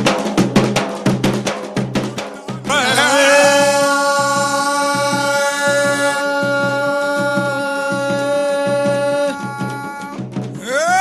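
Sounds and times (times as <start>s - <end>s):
barrel drum beaten fast: 0.0s - 11.0s.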